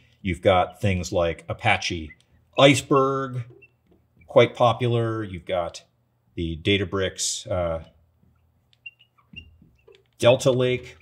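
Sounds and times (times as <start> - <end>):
marker squeaking on glass: 0.4 - 4.7, 8.2 - 11.0.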